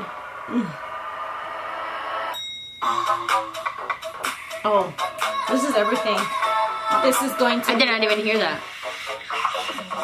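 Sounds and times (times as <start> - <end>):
music beat: 0.0 - 10.0
bell-like chime: 2.3 - 3.3.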